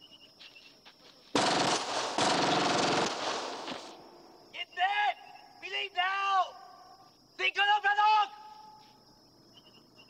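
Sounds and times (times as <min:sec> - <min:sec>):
rapid automatic gunfire: 0:01.4 - 0:04.0.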